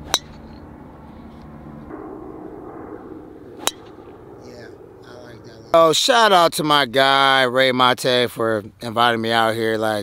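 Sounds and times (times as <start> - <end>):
golf club striking ball: 0.0 - 0.7, 1.8 - 4.3
low background hum: 0.0 - 7.8.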